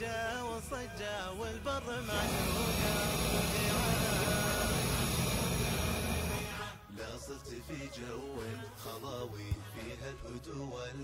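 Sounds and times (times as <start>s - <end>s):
gas stove burner rushing: 2.0s - 6.8s.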